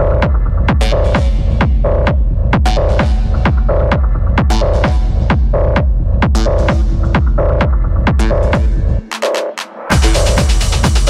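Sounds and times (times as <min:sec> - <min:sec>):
steady kick drum: 0:00.0 - 0:09.3, 0:09.9 - 0:11.0
electronic dance music: 0:00.0 - 0:11.0.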